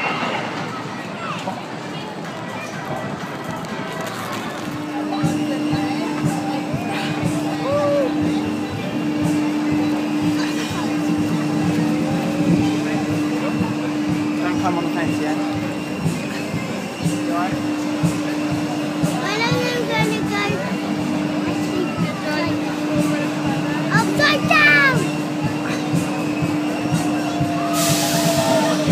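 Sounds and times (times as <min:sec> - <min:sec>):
droning machine tone: 0:04.6 - 0:28.9
steady low hum: 0:04.8 - 0:27.6
people calling out: 0:06.6 - 0:08.7
rising cry: 0:07.4 - 0:08.3.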